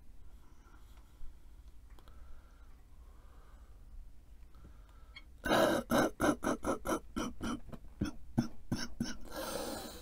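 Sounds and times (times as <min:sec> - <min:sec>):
man coughing: 0:05.5 - 0:09.2.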